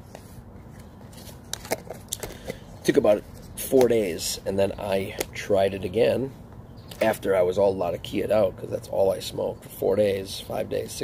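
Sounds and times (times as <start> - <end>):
man speaking: 2.8 - 6.4, 7.0 - 11.0.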